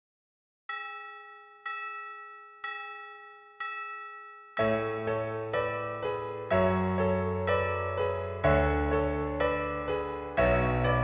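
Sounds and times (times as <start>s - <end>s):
bell-like chime ringing: 0.7s - 6.4s.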